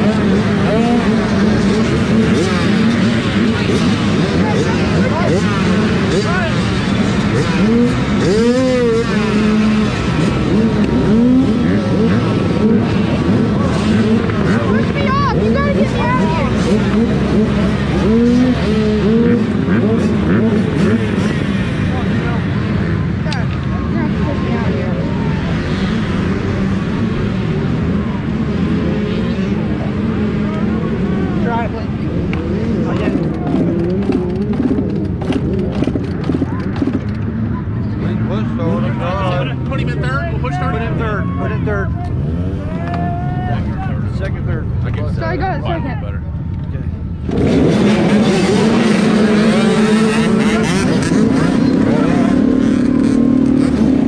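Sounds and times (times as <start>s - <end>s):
dirt bike engines revving: 0.0s - 54.0s.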